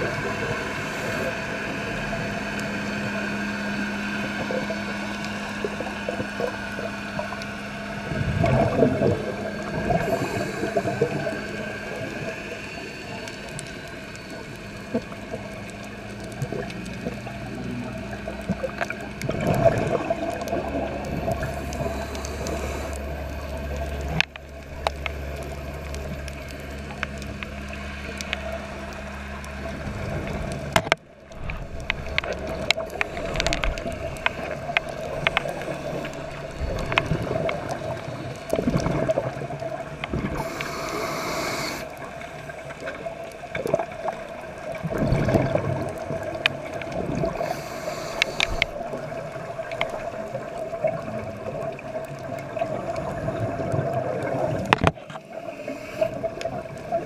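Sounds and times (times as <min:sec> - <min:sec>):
rush of exhaled bubbles: 0:00.0 - 0:13.2, 0:16.3 - 0:26.5, 0:29.6 - 0:57.0
steady low underwater hum: 0:00.0 - 0:57.0.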